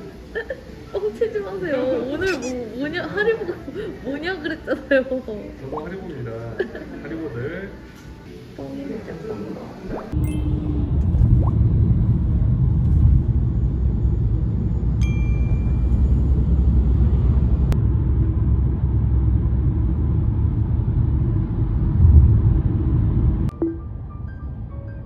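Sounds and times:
ringing chime: 10.2s - 10.7s, 15.0s - 16.1s.

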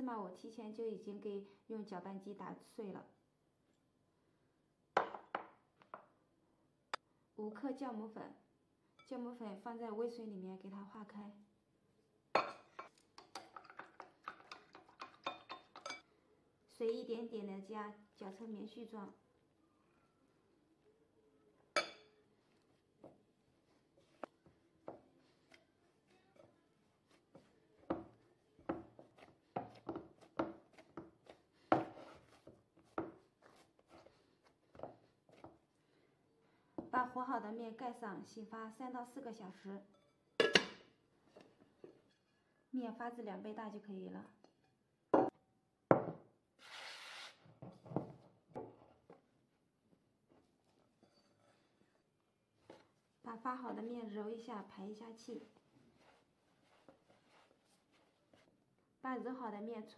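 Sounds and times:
faint handling sounds: 22.2s - 36.7s, 49.0s - 53.3s, 54.6s - 58.7s
dough kneading thuds and squishes: 26.9s - 35.7s.

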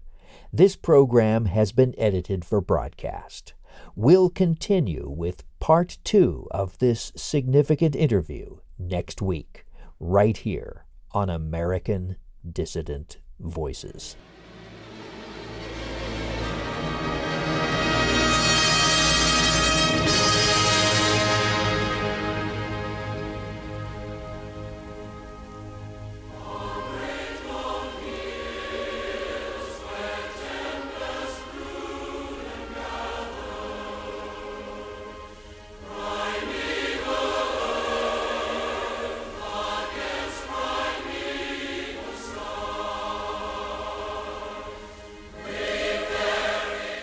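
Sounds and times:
choir singing long phrases: 14.2s - 47.0s.

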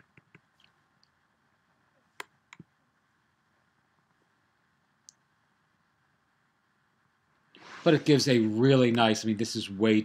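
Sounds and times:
computer clicks: 2.2s - 2.7s.

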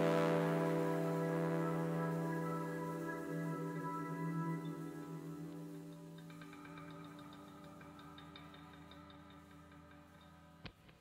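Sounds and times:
faint ambient music: 0.0s - 11.0s.

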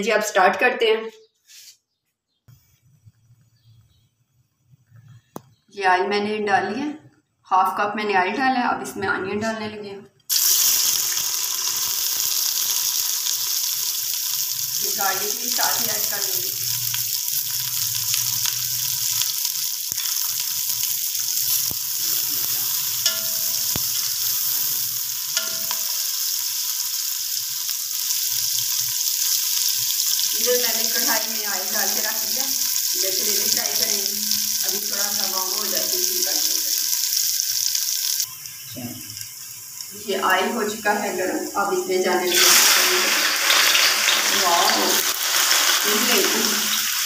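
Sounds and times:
onions sizzling in hot oil: 10.3s - 47.0s.

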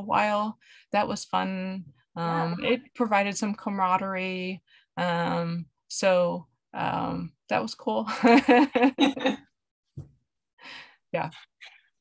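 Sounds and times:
woman saying yeah: 2.3s - 2.8s.

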